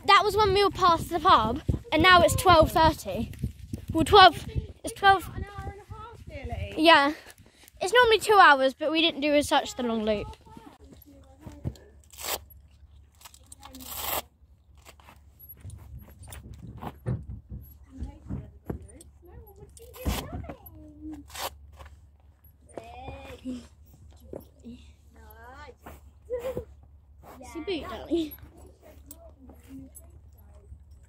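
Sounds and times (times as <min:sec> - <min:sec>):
velcro ripping open: 0:12.0 - 0:12.5, 0:13.2 - 0:15.0, 0:21.2 - 0:21.6.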